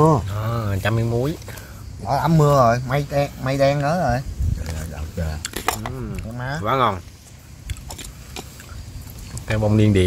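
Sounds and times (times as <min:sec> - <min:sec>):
person chewing food: 0:07.6 - 0:09.5.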